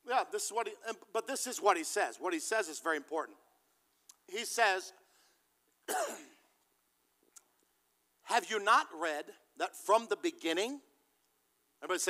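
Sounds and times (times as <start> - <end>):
man clearing throat with cough: 5.9 - 6.5.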